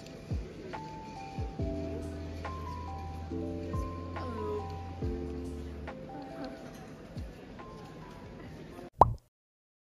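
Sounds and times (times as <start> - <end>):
shop ambience: 0.0 - 9.0
faint background music: 0.0 - 9.2.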